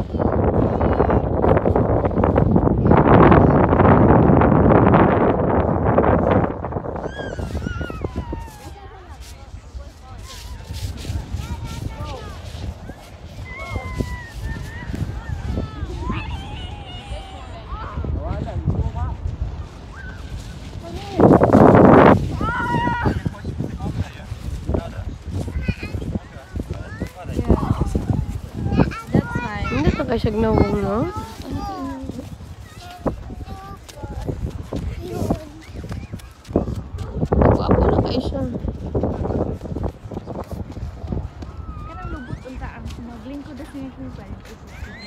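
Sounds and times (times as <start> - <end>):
wind buffeting microphone: 0.0 - 45.0
child's high-pitched call: 28.7 - 33.8, 41.6 - 42.6.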